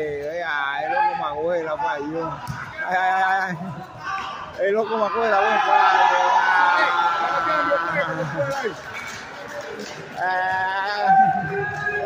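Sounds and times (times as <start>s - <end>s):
spectators shouting: 0.8s - 8.8s.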